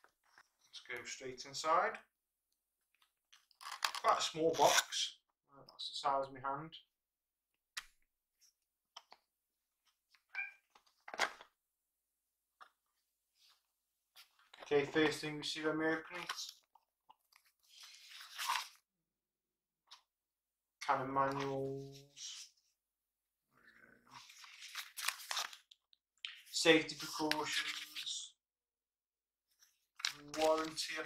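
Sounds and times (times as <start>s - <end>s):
paper rustling: 17.4s - 18.8s, 24.1s - 25.8s, 27.0s - 28.2s, 29.6s - 31.0s.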